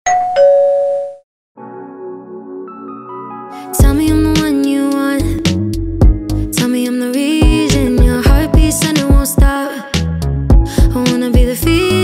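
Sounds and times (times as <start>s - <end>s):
two-note ding-dong chime: 0.1s - 1.2s.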